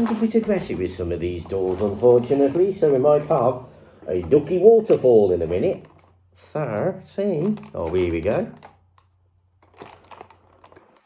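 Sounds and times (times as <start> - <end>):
cardboard crinkling and scratching: 0.0 - 6.2, 9.6 - 11.0.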